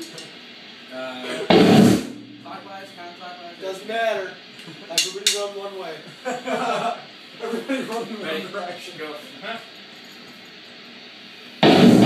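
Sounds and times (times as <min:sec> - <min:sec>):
drum kit hit: 0:01.5 - 0:03.0, 0:11.6 - 0:12.0
laughter: 0:04.6 - 0:05.0, 0:06.0 - 0:08.0.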